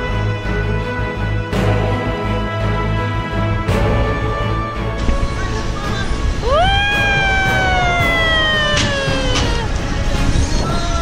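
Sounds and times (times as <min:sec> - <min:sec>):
background music: 0:00.0 - 0:11.0
wind rumble on microphone: 0:05.0 - 0:11.0
child crying out excitedly: 0:06.4 - 0:09.9.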